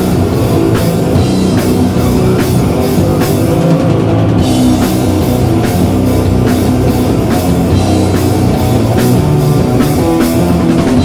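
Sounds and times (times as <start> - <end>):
distorted electric guitars and bass: 0.0 - 11.0
drum kit: 0.0 - 11.0.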